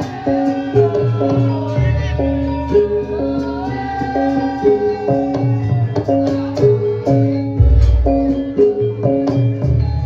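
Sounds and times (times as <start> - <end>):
gamelan music: 0.0 - 10.0
drum: 3.4 - 10.0.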